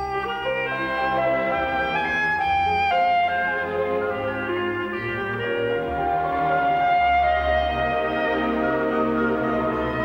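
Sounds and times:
clarinet melody: 0.0s - 10.0s
string orchestra: 0.0s - 10.0s.

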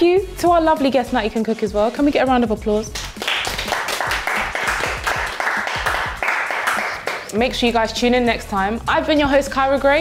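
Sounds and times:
people applauding: 3.0s - 7.3s.

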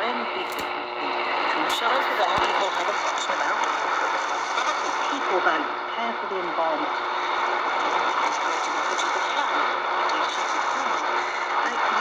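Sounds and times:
faint radio voice: 0.0s - 12.0s
radio static hiss: 0.0s - 12.0s.

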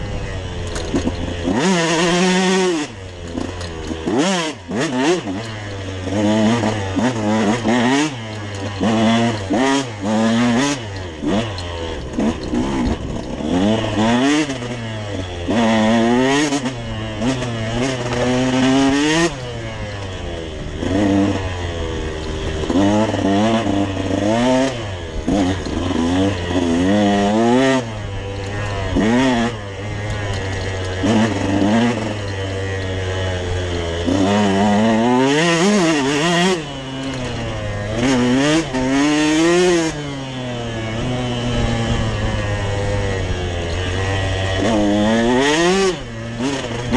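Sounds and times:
dirt bike engine revving: 0.0s - 46.9s.

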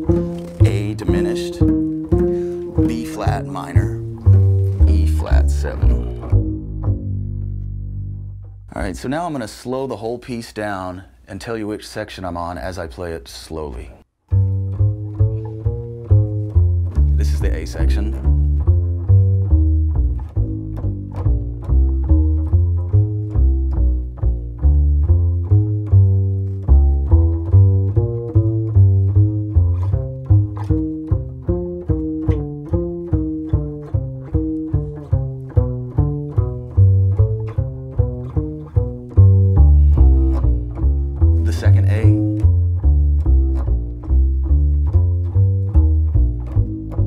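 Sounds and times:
plucked double bass: 0.0s - 10.6s, 13.6s - 47.0s.

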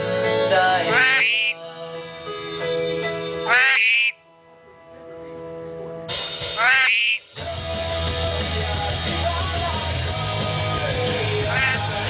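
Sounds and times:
background music with held notes: 0.0s - 12.0s
lorikeet calls: 0.9s - 1.6s, 3.4s - 4.2s, 6.4s - 7.4s, 11.5s - 11.9s.

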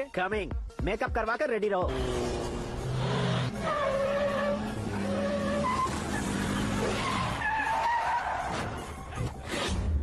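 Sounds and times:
vehicle engines running: 1.9s - 9.0s.

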